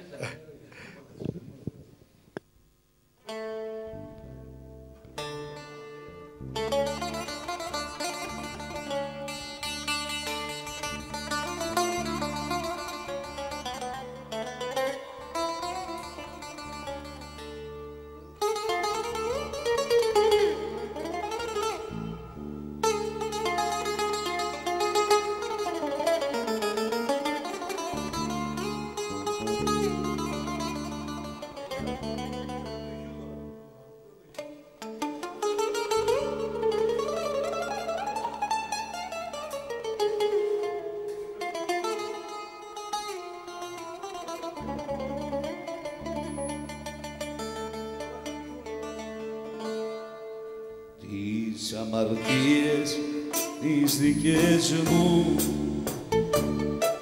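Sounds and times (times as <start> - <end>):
plucked long-necked lute: 3.2 - 57.0
bass and guitar: 3.3 - 42.1, 43.6 - 49.8, 52.1 - 57.0.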